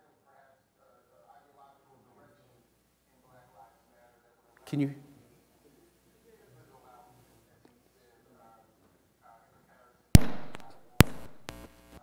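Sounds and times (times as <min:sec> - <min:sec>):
loud pops through loudspeakers: 0:10.2 - 0:12.0.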